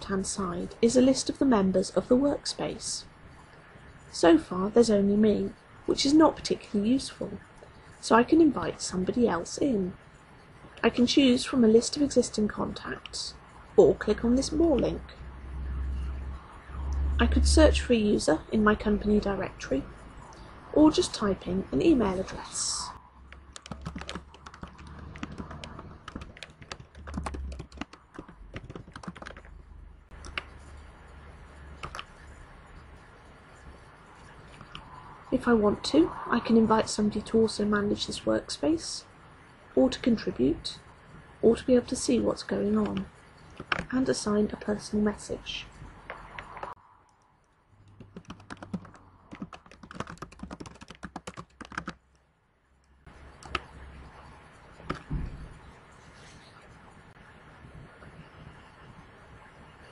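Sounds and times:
low steady hum: 0.0 - 50.8
computer keyboard typing: 23.3 - 30.8, 31.7 - 32.3, 34.5 - 35.0, 42.8 - 44.0, 47.8 - 52.0, 53.4 - 53.7, 54.8 - 55.1
keyboard key clicks: 43.6 - 43.9.

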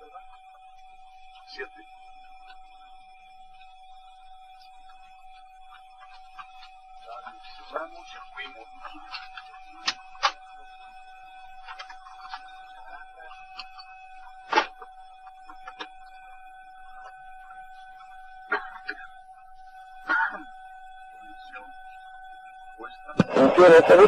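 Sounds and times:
steady electrical tone: 0.0 - 24.0.

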